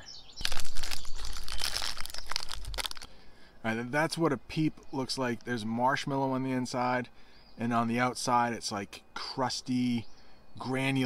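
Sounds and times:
plastic packaging crinkling: 0:00.4 - 0:03.1.

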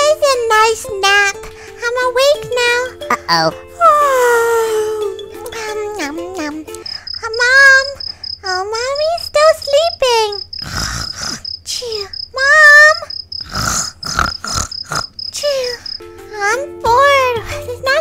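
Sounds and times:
comic snoring snorts: 0:10.6 - 0:11.5, 0:13.4 - 0:15.2.

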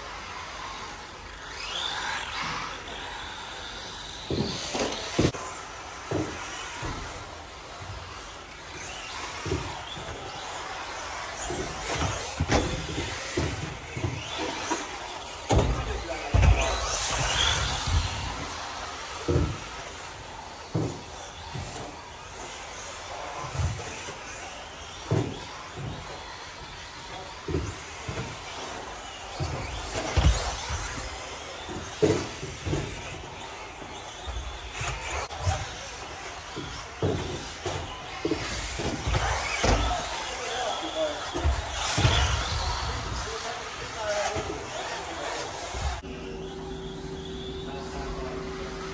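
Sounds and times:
electric toy car motor whining: 0:00.0 - 0:48.9.

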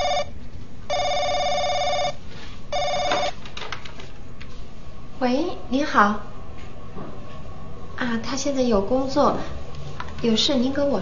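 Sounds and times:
telephone electronic ringer trilling: 0:00.0 - 0:00.3, 0:00.9 - 0:02.2, 0:02.8 - 0:03.3.

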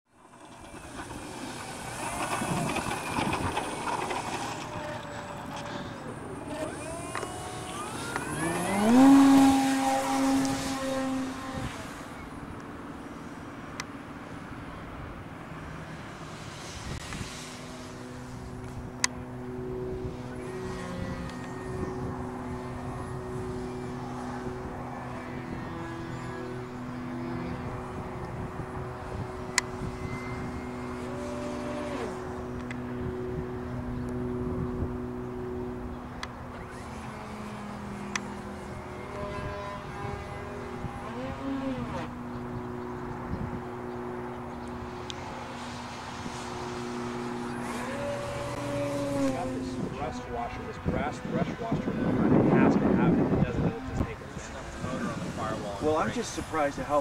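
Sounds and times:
model plane motor whine: 0:00.1 - 0:57.0.

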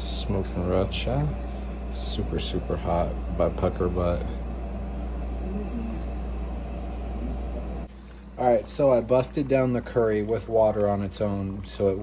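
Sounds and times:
low rumble with hiss: 0:00.0 - 0:12.0.

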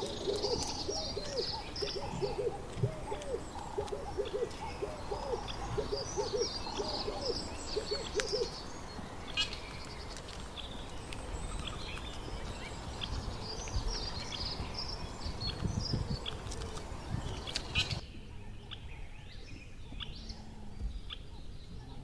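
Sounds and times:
low cooing bird calls: 0:00.0 - 0:22.0
small birds chirping: 0:00.0 - 0:22.0.

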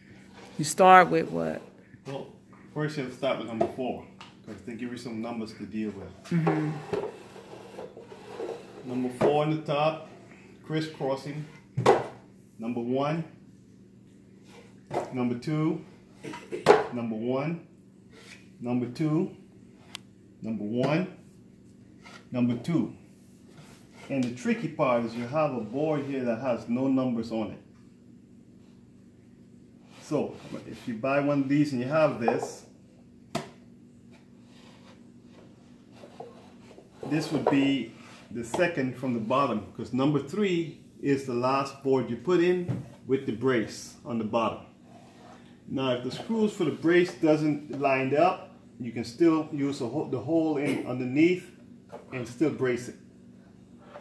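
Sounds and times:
faint steady hum: 0:00.0 - 0:54.0
hand rubbing wooden shelf: 0:06.6 - 0:09.2, 0:34.4 - 0:38.4.

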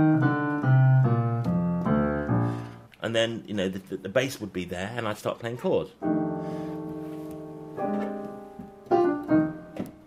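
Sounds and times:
piano walking bass line: 0:00.0 - 0:03.4, 0:05.9 - 0:10.0.

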